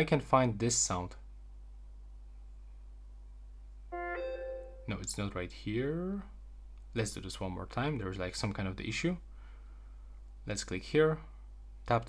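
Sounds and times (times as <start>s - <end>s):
two-note electronic chime: 3.9s - 5.0s.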